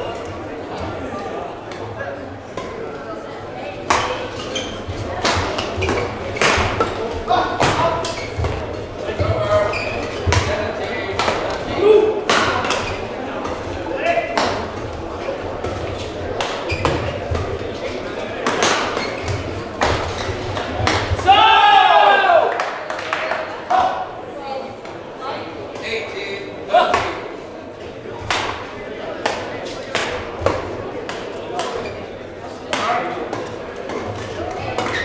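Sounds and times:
rackets hitting shuttlecock: 0:03.8 - 0:13.7, 0:14.3 - 0:15.0, 0:15.6 - 0:21.3, 0:28.2 - 0:32.0, 0:32.6 - 0:35.0.

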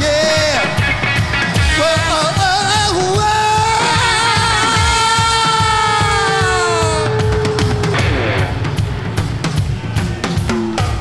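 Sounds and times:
live rock band drums and bass: 0:00.0 - 0:11.0
man singing high wailing note: 0:02.1 - 0:08.6.

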